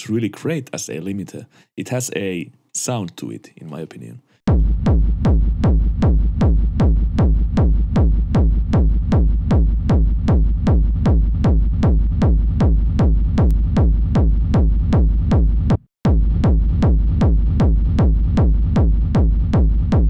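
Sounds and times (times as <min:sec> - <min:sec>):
distorted kick drum thumping: 0:04.5 - 0:20.0.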